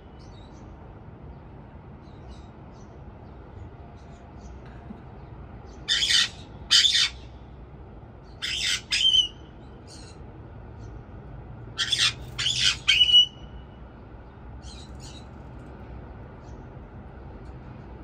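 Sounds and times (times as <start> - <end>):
parrots squawking: 5.9 - 7.3, 8.4 - 10.0, 11.8 - 13.4.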